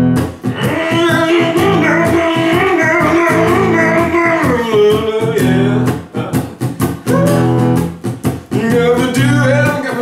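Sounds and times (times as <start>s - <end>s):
electric guitar strumming blues: 0.0s - 10.0s
wavering guitar melody: 0.0s - 10.0s.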